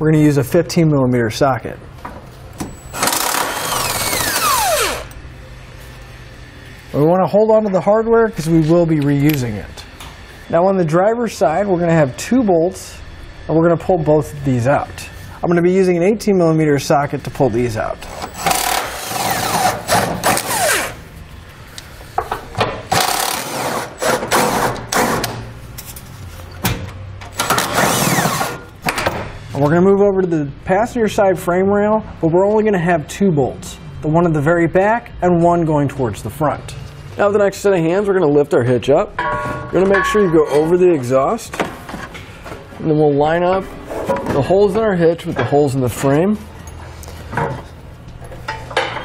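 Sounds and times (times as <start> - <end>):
power wrench running: 2.7 - 5.2, 18.1 - 21.0, 22.9 - 25.2, 27.4 - 28.7.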